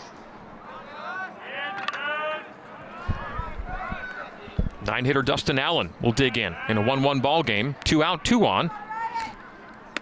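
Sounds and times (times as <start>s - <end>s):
crowd talking and calling out: 0.4s - 10.0s.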